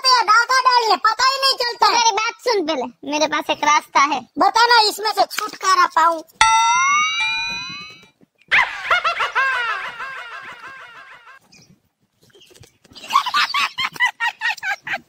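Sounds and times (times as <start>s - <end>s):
rising whistle-like tone: 6.4s - 8.0s
laughter: 8.5s - 11.4s, 13.0s - 15.0s.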